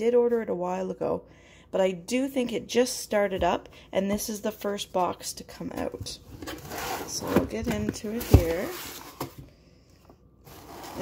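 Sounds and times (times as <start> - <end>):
cardboard and paper rustling: 5.8 - 9.5, 10.4 - 11.0.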